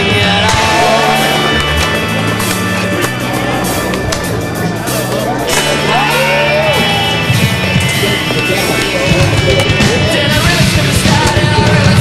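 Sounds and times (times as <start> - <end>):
loud background music: 0.0 - 12.0.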